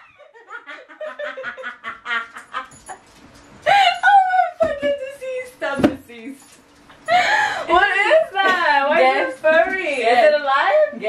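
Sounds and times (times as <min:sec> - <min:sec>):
women laughing: 0:00.0 - 0:03.1, 0:03.7 - 0:05.3.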